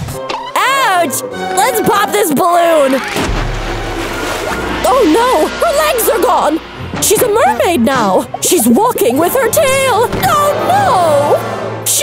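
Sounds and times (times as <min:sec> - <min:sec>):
low rumble: 0:02.9 - 0:11.9
balloon bursting: 0:03.0 - 0:07.0.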